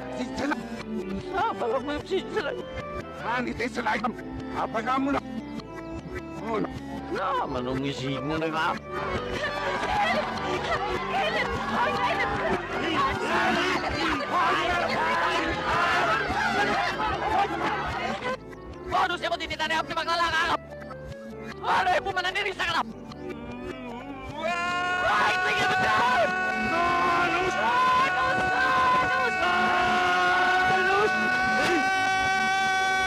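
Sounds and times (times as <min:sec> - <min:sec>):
reversed shouting voices: 0:09.0 - 0:18.4, 0:24.4 - 0:33.0.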